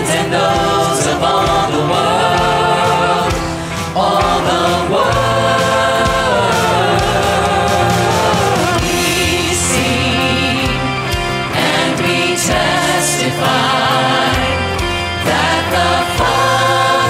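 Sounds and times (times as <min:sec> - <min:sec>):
band playing: 0:00.0 - 0:17.0
choir singing worship song: 0:00.0 - 0:17.0.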